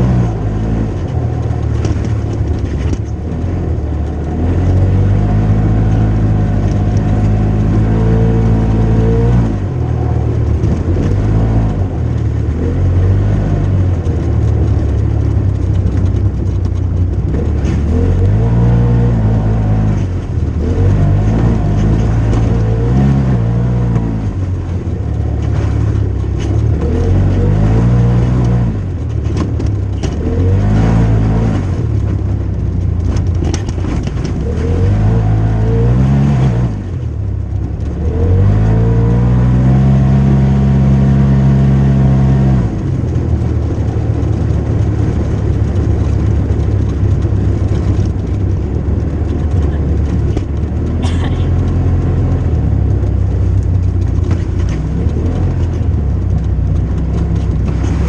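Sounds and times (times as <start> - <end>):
utility vehicle engine revving: 0.0 - 58.0.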